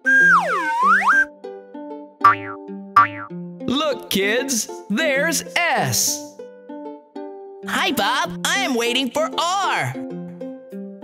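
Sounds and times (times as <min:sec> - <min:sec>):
sliding cartoon sound effect: 0:00.0 - 0:01.3
bouncy cartoon music: 0:00.0 - 0:10.2.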